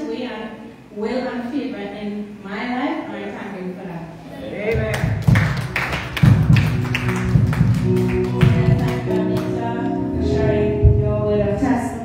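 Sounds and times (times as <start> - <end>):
sharp drum strikes: 4.8 - 9.6
sustained low notes: 5.1 - 12.0.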